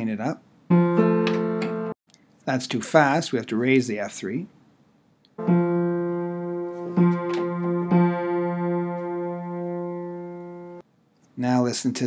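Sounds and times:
piano note ringing: 5.4s - 10.8s.

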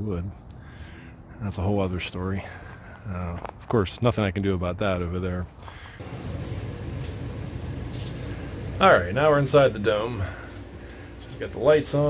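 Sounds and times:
heater rushing noise: 6.0s - 12.0s.

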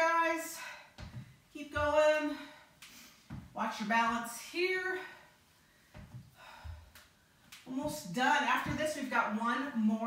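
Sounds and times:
woman breathing: 0.4s - 1.5s, 4.8s - 7.6s
feet thudding on exercise mat: 0.6s - 2.5s, 3.2s - 3.6s, 5.8s - 7.0s.

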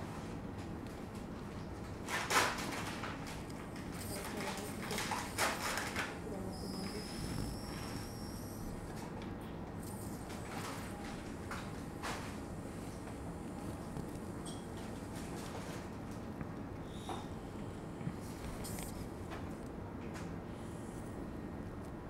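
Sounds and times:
operating room background noise: 0.0s - 22.0s
high-pitched drill whine: 6.5s - 8.8s.

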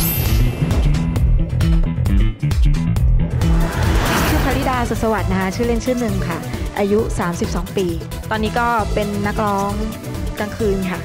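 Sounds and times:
theme music with bass beat: 0.0s - 11.0s
whoosh transition effect: 3.2s - 5.5s.

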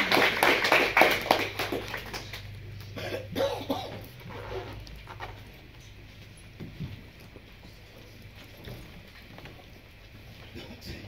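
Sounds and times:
low room hum: 0.0s - 11.0s
footsteps on floor: 4.1s - 10.6s.

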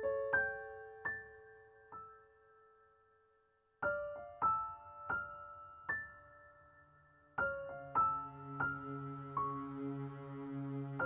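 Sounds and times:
soft piano music: 0.0s - 11.0s.

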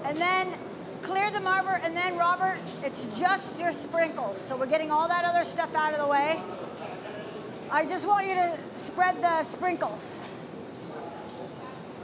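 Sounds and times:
woman talking: 0.0s - 6.4s, 7.7s - 10.2s
steady background hum: 0.0s - 12.0s.

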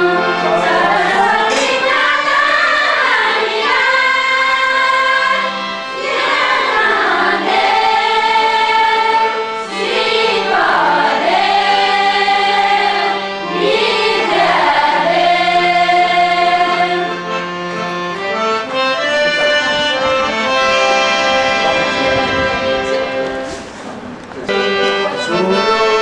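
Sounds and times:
women singing together: 0.0s - 17.2s.

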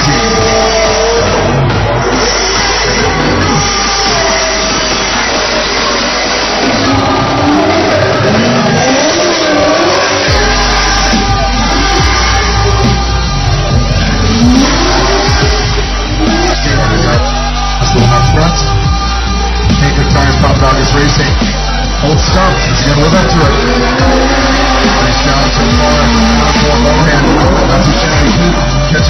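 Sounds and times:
car engines revving hard: 0.0s - 29.0s.

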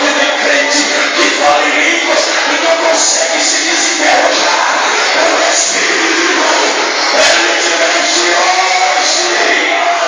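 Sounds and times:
church worship music: 0.0s - 10.0s
congregation voices: 0.0s - 10.0s.

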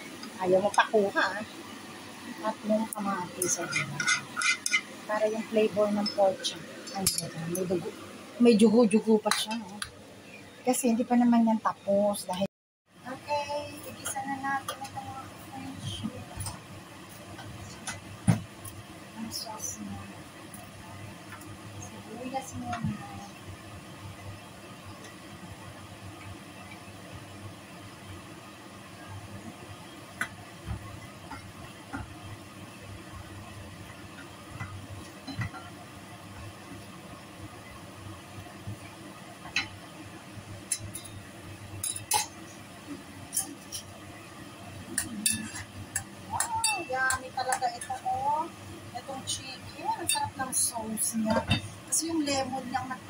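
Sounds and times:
garlic frying hiss: 13.0s - 53.0s.

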